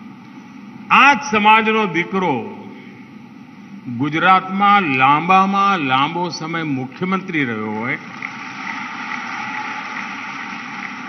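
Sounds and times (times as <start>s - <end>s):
crowd applauding: 8.0s - 11.0s.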